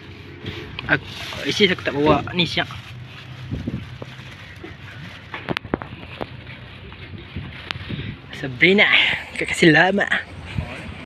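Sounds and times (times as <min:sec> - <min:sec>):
plastic bag crinkling: 0:01.0 - 0:06.4.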